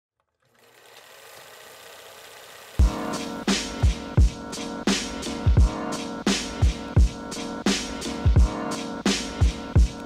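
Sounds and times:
faint rapid mechanical clatter: 0.2 - 2.8.

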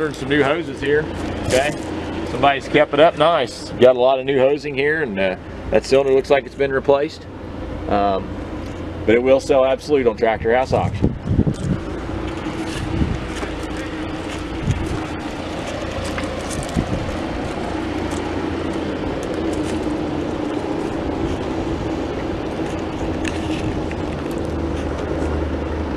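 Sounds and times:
tractor engine idling: 0.0 - 25.9.

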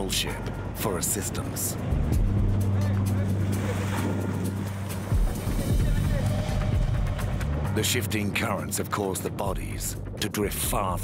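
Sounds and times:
boat engine humming: 0.0 - 10.2.

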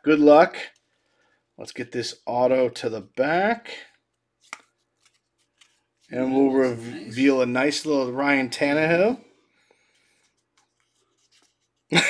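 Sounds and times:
cards sliding through hands: 4.0 - 6.8, 9.8 - 11.9.

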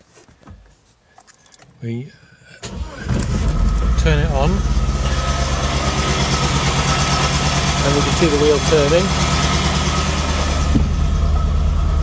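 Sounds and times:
car engine idling: 2.7 - 12.0.

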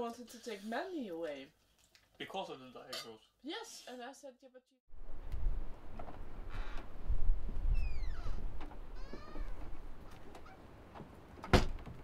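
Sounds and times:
cat meowing: 9.0 - 9.6.

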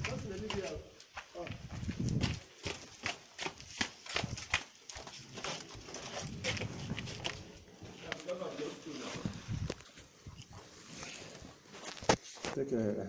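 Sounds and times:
footsteps on gritty concrete: 0.0 - 12.6.

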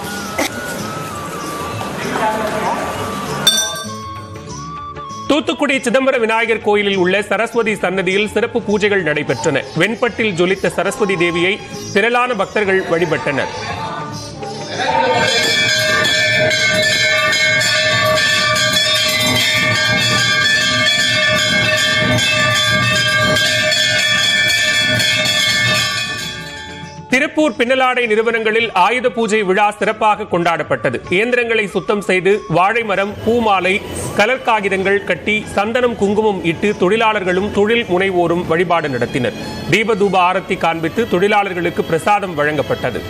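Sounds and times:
crowd voices: 0.0 - 4.1, 9.1 - 19.2
temple bells ringing rapidly: 0.0 - 4.8, 14.8 - 30.0, 31.1 - 43.0
ringing metallic clink: 3.5 - 4.3, 15.3 - 27.1.

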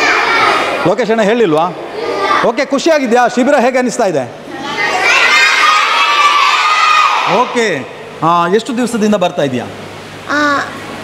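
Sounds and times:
children shouting together: 0.0 - 0.9, 1.9 - 2.5, 4.5 - 7.6.

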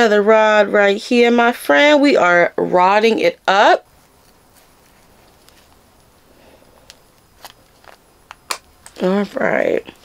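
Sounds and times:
hair handling sounds: 3.0 - 10.0.

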